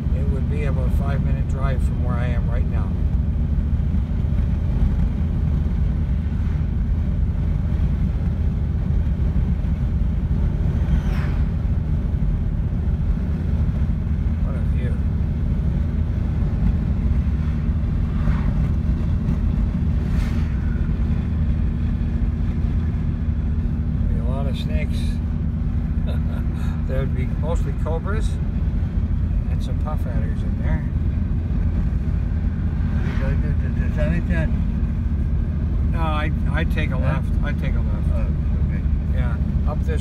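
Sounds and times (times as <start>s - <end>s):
car road and engine noise: 0.0s - 40.0s.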